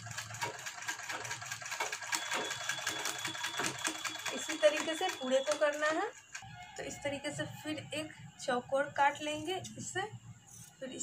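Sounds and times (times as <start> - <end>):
sewing machine stitching clatter: 0.0 - 6.5.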